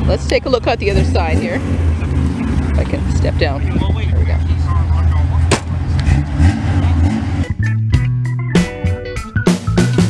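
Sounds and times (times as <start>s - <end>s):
rock music with guitar and drums: 7.0s - 10.0s.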